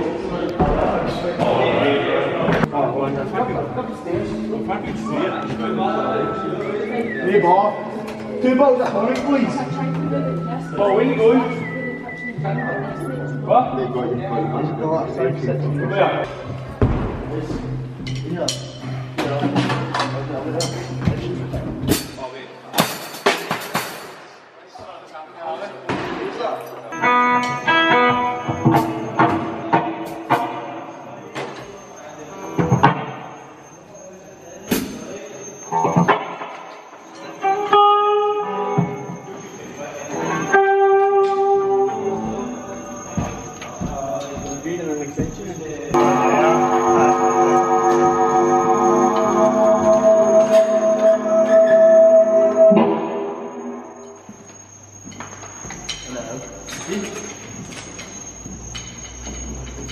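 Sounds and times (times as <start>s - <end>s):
electric guitar through amplifier: 26.9s - 30.6s, 46.0s - 55.0s
faint high whine: 26.9s - 59.9s.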